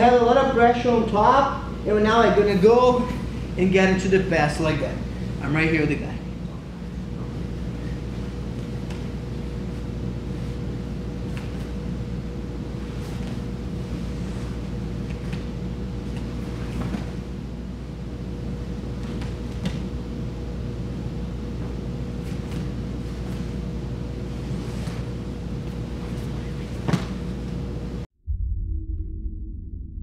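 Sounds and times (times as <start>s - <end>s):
low room hum: 0.0s - 28.1s
rustles and knocks on mat: 26.1s - 27.3s.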